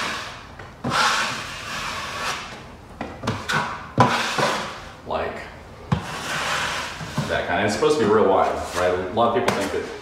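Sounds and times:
taping knife scraping drywall: 0:00.0 - 0:02.6, 0:03.3 - 0:04.8, 0:05.9 - 0:07.4.

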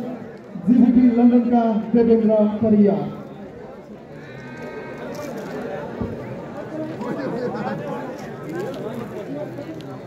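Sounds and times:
outdoor crowd murmur: 0:00.0 - 0:10.0.

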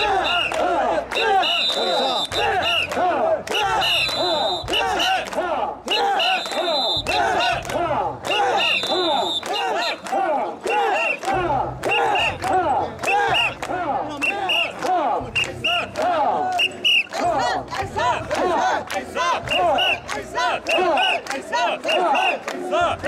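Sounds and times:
crowd chanting shouts: 0:00.0 - 0:23.0.

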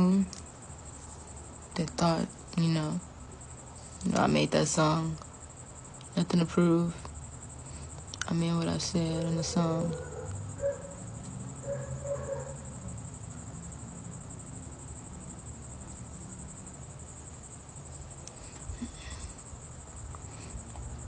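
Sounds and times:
low background hum: 0:00.0 - 0:21.0
night insects chirring: 0:00.0 - 0:21.0.

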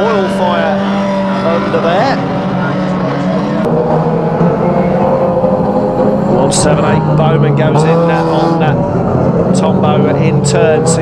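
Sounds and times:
racing car engines droning: 0:00.0 - 0:11.0.

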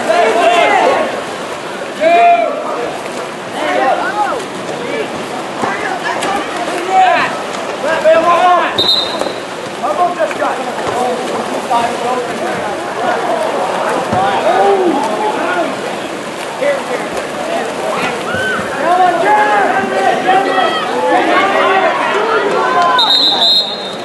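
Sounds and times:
voices shouting: 0:00.0 - 0:01.2, 0:12.7 - 0:15.9, 0:17.9 - 0:24.0
water splashing in pool: 0:00.0 - 0:24.0
referee's whistle blast: 0:08.8 - 0:09.5, 0:22.9 - 0:24.0.

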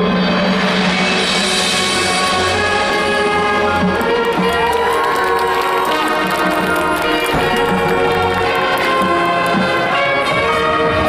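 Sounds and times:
marching band brass and winds: 0:00.0 - 0:11.0
percussion: 0:00.0 - 0:11.0
crowd cheering: 0:02.2 - 0:10.2.

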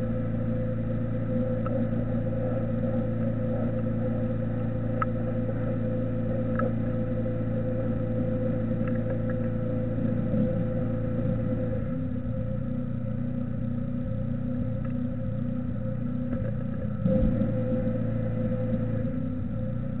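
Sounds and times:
low electrical hum: 0:00.0 - 0:20.0.

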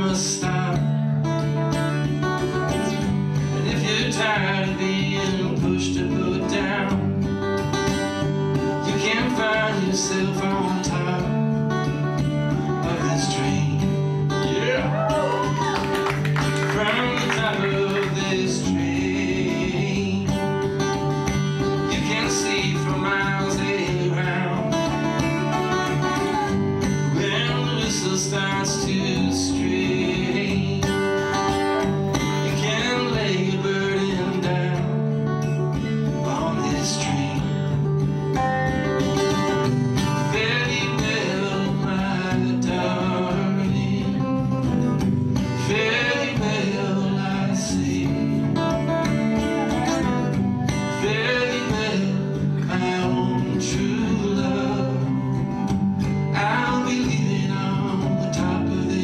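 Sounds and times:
acoustic guitar strumming: 0:00.0 - 0:59.0
upright bass: 0:00.0 - 0:59.0.

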